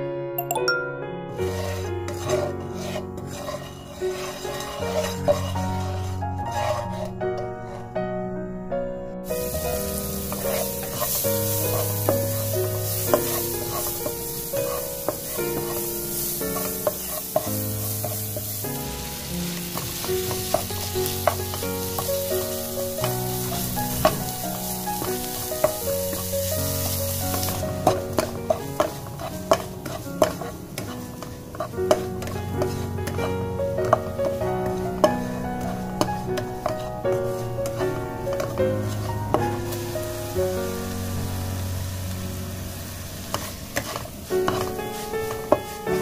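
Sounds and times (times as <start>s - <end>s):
background music: 0.0s - 46.0s
metal spatula scraping a wok: 1.3s - 8.0s, 9.2s - 40.4s, 42.8s - 46.0s.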